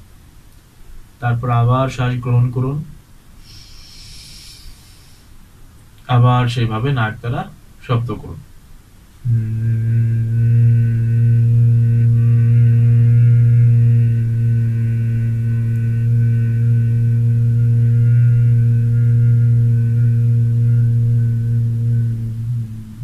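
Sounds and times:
man humming low note: 9.2s - 23.0s.

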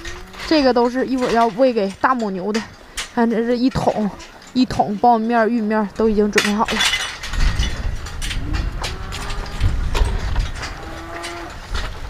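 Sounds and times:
cattle lowing: 0.0s - 3.2s, 7.7s - 12.0s
scattered knocks: 3.7s - 12.0s
steady low rumble: 5.9s - 10.7s.

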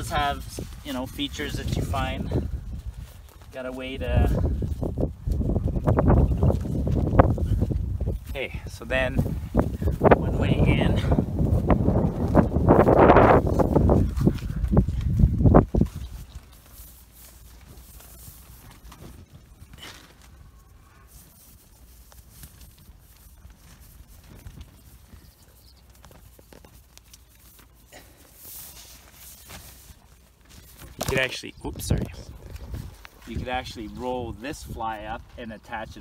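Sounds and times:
tent fabric rustling: 0.0s - 35.8s.

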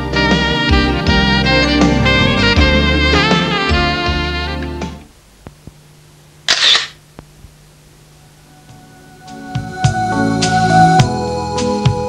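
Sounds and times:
low steady hum: 2.1s - 9.3s.

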